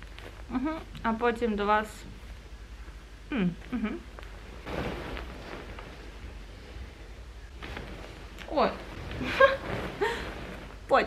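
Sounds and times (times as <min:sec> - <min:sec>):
low steady hum: 0:00.0 - 0:11.0
duvet rustling: 0:04.1 - 0:11.0.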